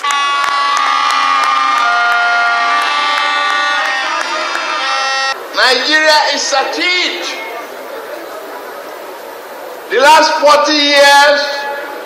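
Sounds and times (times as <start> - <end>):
audience clapping: 0.0 - 5.4
wind instruments holding notes: 0.0 - 5.5.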